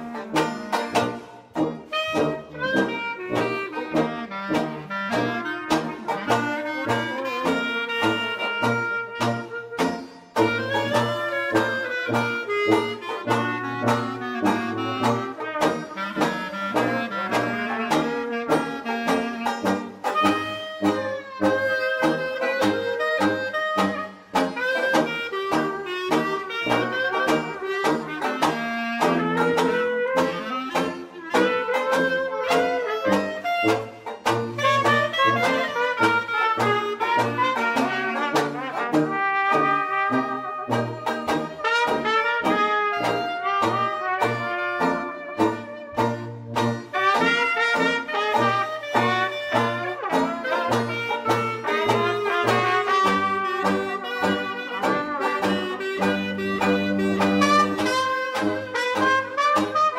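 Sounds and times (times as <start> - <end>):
banjo strumming: 0.0 - 59.9
clarinet: 0.0 - 59.9
trumpet: 0.0 - 59.9
tuba bass line: 0.0 - 59.9.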